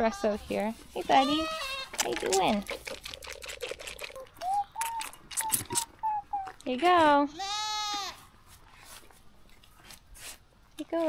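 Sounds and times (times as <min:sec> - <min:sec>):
goat sucking from bottle: 0:01.1 - 0:06.6.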